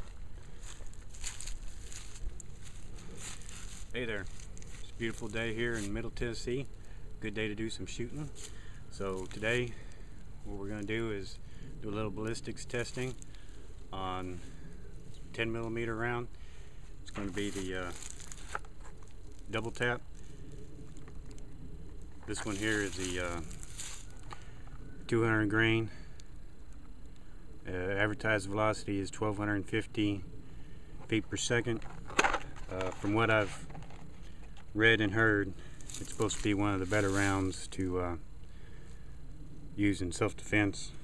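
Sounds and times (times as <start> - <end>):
footsteps rustling through grass: 0.0 - 6.9, 7.8 - 11.4, 12.4 - 21.0, 22.1 - 24.6, 35.4 - 37.8
steady low rumble: 0.0 - 41.0.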